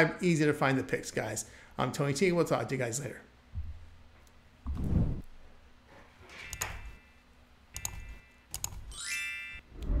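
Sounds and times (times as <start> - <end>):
mouse clicks: 7.8 - 8.8
rising chime: 8.9 - 10.0.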